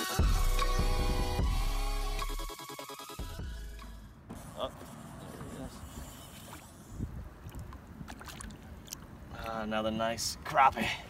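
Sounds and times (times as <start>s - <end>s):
wind and water noise: 4.3s - 11.0s.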